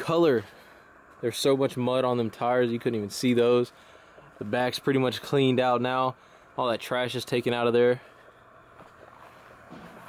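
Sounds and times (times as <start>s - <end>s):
faint steady low hum: 0.0s - 10.0s.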